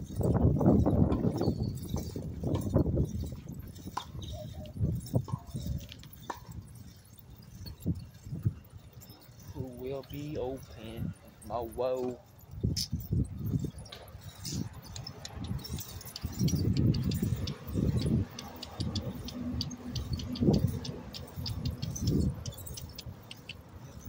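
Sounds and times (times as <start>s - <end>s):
bicycle clicks and rattles: 0.0s - 24.0s
wind buffeting microphone: 0.0s - 24.0s.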